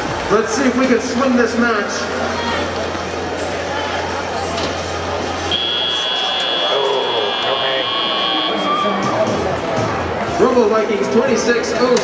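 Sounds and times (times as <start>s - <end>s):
arena crowd noise: 0.0s - 12.0s
high-pitched buzzer tone: 5.5s - 8.7s.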